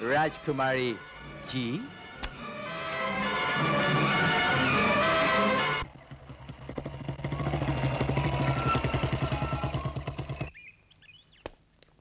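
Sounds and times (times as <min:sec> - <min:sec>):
motorcycle engine running: 0:03.2 - 0:10.7.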